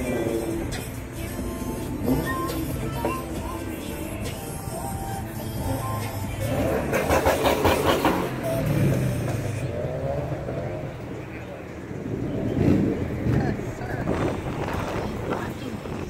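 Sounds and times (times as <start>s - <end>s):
music: 0.0s - 9.6s
background voices: 0.0s - 16.0s
car engine running: 0.0s - 16.0s.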